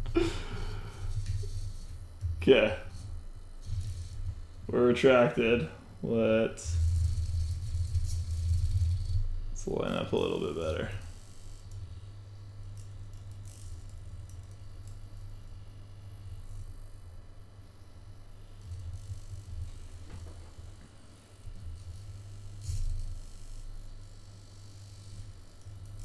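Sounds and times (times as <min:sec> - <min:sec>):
servos buzzing: 0:00.0 - 0:26.0.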